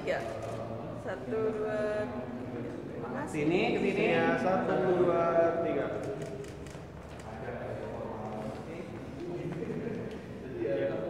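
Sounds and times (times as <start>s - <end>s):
murmur of voices: 0.0s - 11.0s
camera shutters clicking: 6.0s - 7.4s.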